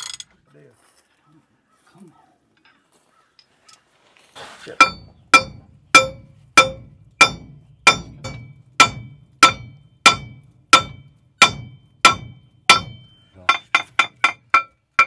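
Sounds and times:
hammer ringing on steel: 4.8 - 15.0.

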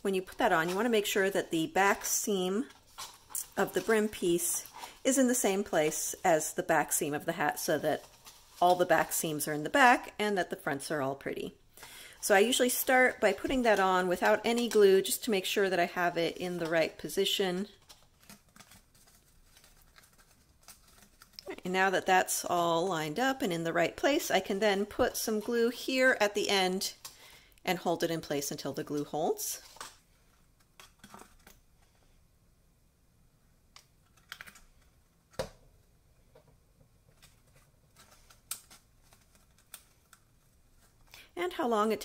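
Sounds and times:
stiff paper ticks and rustles: 17.7 - 21.5, 37.0 - 41.1.

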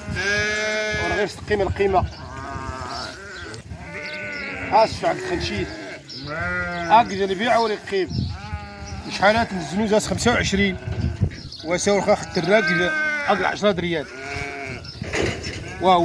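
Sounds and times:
sheep bleating: 0.0 - 15.0.

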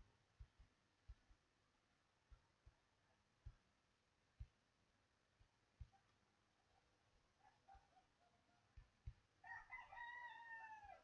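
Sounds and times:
rooster crowing faintly: 5.8 - 11.0.

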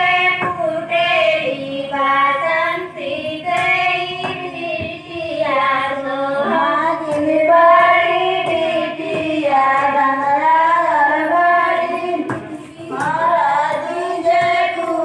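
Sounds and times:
women singing folk song: 0.0 - 15.0.

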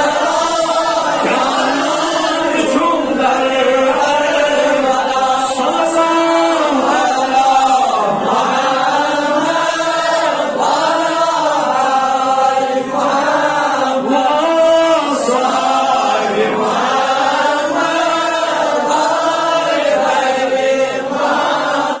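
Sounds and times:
man chanting into microphone: 0.0 - 21.1.

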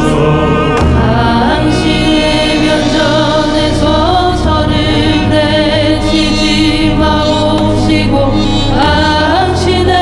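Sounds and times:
keyboard: 0.0 - 10.0
several voices singing together: 0.0 - 10.0
traditional instrument ensemble: 0.0 - 10.0.

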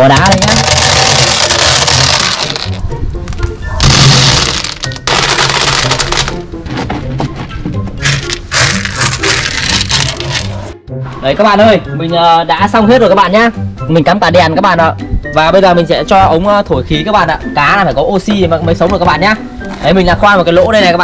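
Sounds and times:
pebbles rattling into plastic tank: 0.0 - 2.8, 3.8 - 6.4, 8.0 - 10.6
background music: 0.0 - 21.0.

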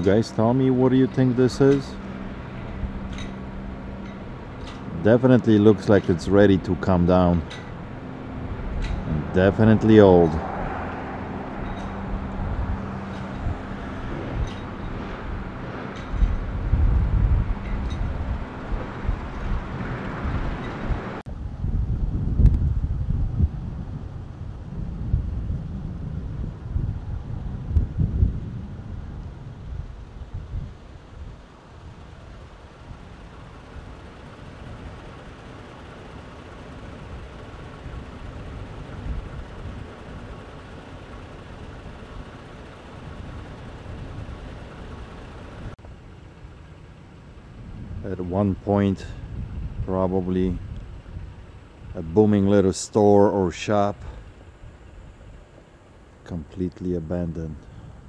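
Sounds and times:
wind rumbling on microphone: 0.0 - 52.6.

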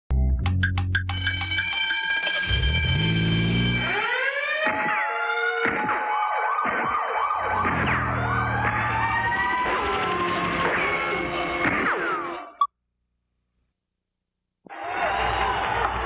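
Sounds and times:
police siren sweeping: 1.3 - 12.6.

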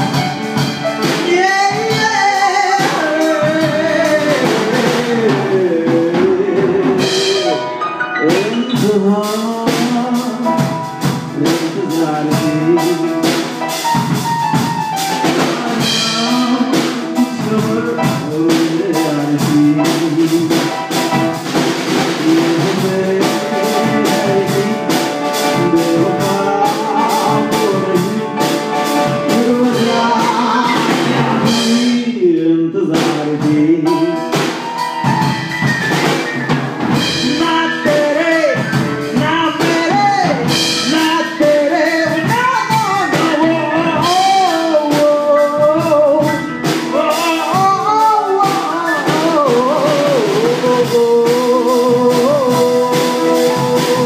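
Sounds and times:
drum kit: 0.0 - 54.0
grand piano playing: 0.0 - 54.0.

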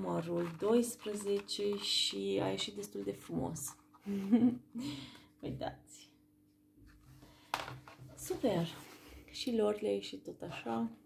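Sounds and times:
hand handling noise: 0.1 - 2.4.

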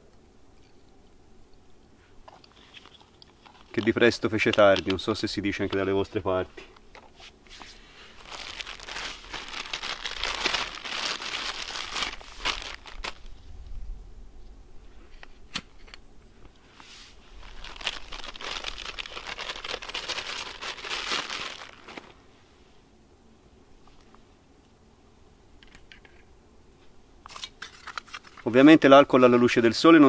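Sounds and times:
crinkling rustling handling: 2.2 - 13.4, 16.8 - 22.2, 27.3 - 30.0.

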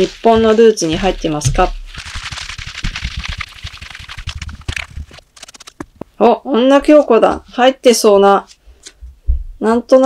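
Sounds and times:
cards rustling on cloth: 0.0 - 6.1.

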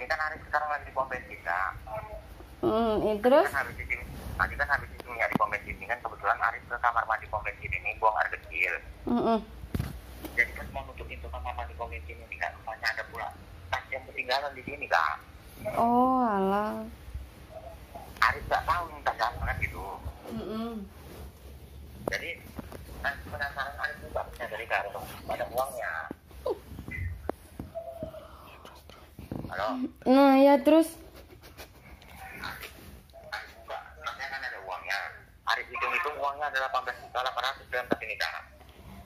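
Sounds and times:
speech through phone speaker: 0.0 - 8.9, 10.4 - 16.9, 17.5 - 20.9, 22.0 - 26.2, 32.2 - 38.6.

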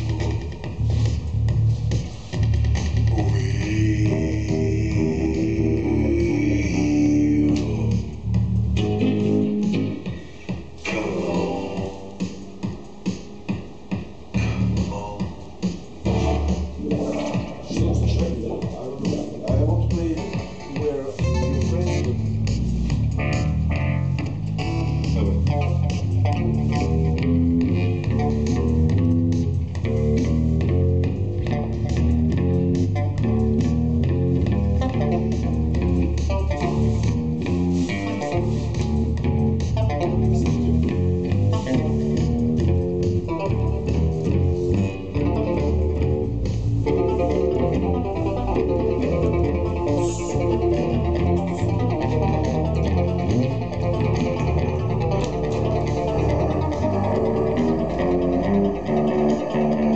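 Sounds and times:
live rock band playing: 0.0 - 18.3, 19.2 - 59.9.

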